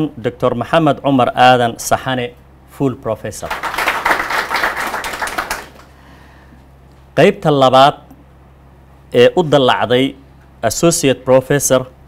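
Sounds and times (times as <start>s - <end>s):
low room hum: 0.0s - 12.0s
audience clapping: 3.4s - 6.0s.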